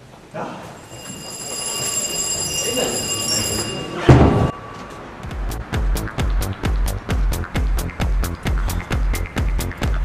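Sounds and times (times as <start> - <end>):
electric school bell ringing: 0.8 - 5.4.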